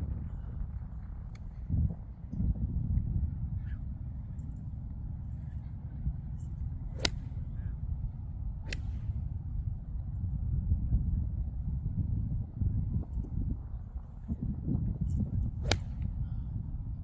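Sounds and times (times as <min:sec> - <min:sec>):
steady low rumble: 0:00.0 - 0:17.0
golf iron striking ball: 0:06.9 - 0:07.7, 0:15.6 - 0:16.1.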